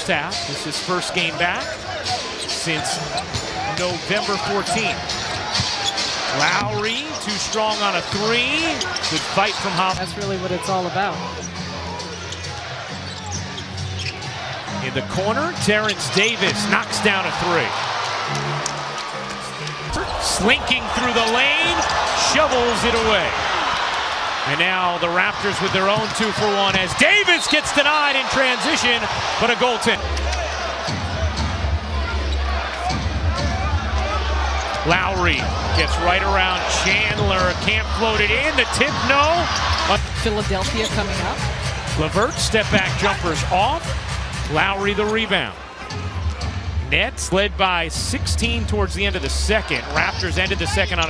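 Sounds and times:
low hum of arena music: 0:00.0 - 0:51.0.

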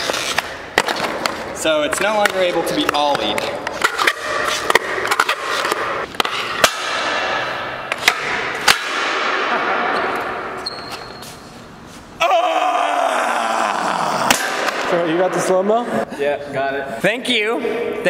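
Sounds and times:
man yelling: 0:12.2 - 0:14.3.

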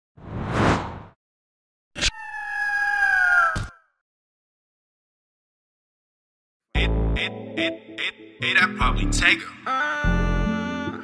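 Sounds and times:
eagle screech: 0:02.0 - 0:03.8.

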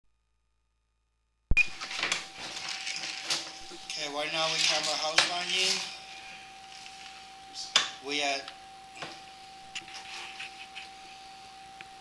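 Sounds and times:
faint steady whine: 0:00.1 - 0:12.0.

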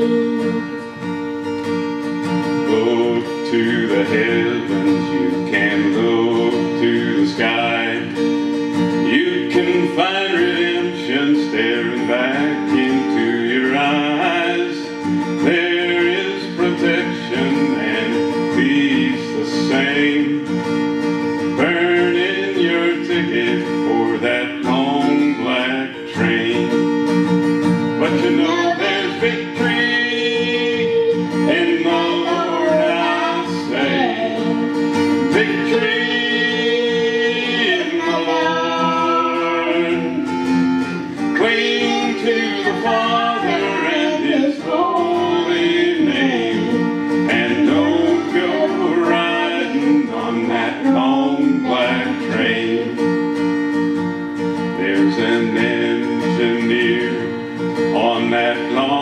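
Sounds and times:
person singing: 0:00.0 - 0:01.0, 0:02.5 - 0:20.7, 0:21.5 - 0:26.9, 0:28.0 - 0:53.2, 0:54.8 - 0:59.0
strummed acoustic guitar: 0:00.0 - 0:59.0.

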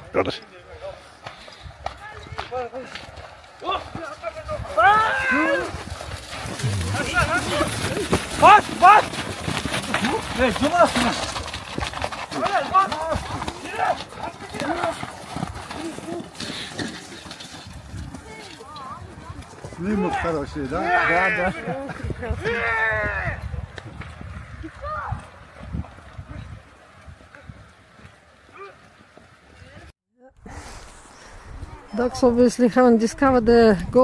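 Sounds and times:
horse hooves on muddy ground: 0:00.3 - 0:29.9
men shouting: 0:06.5 - 0:09.3.

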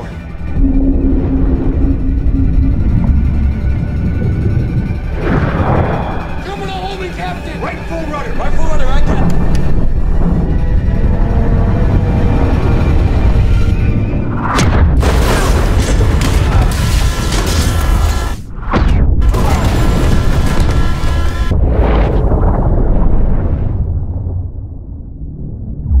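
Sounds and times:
dramatic orchestral score: 0:00.0 - 0:20.3
underwater explosions booming: 0:00.1 - 0:06.5, 0:09.0 - 0:26.0.

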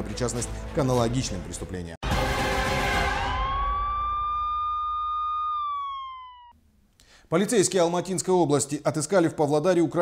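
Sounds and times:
police siren wail: 0:02.1 - 0:06.5.

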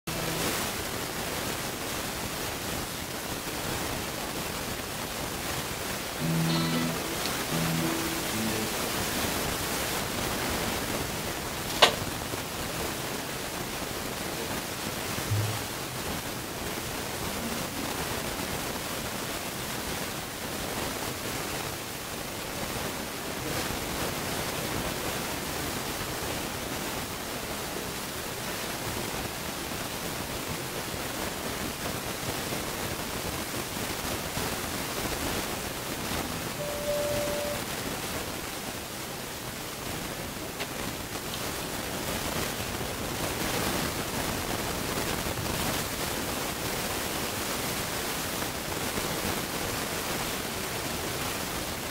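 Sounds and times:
brief low note: 0:00.1 - 0:00.7, 0:06.2 - 0:09.5, 0:15.3 - 0:16.1, 0:36.1 - 0:37.7
short instrument notes: 0:00.1 - 0:00.8, 0:06.2 - 0:10.1, 0:15.3 - 0:16.1, 0:36.1 - 0:37.7
camera microphone hiss: 0:00.1 - 0:51.9.

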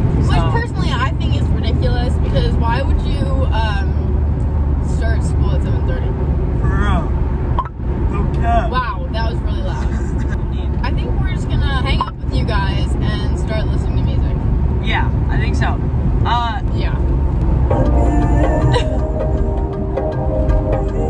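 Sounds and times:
car road and engine rumble: 0:00.0 - 0:21.0
voices talking: 0:00.2 - 0:04.0, 0:08.1 - 0:17.0.

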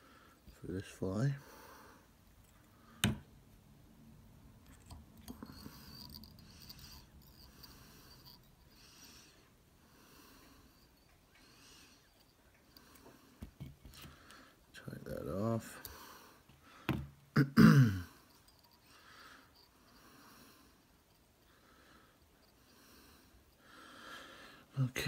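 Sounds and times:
faint breathing: 0:01.3 - 0:03.0, 0:05.3 - 0:14.8, 0:15.7 - 0:17.1, 0:18.1 - 0:24.8.

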